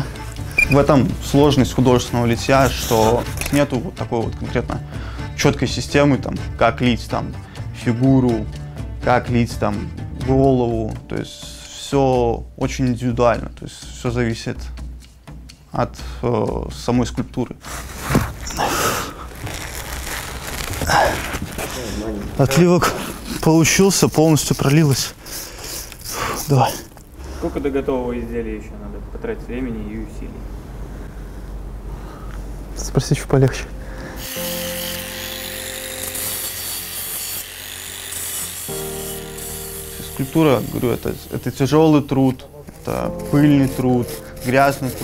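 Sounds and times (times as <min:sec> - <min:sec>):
background music of held chords: 0:00.0 - 0:19.6, 0:32.6 - 0:45.0
mould crunching and scraping: 0:17.7 - 0:22.6
hand tools rasping on metal: 0:34.2 - 0:45.0.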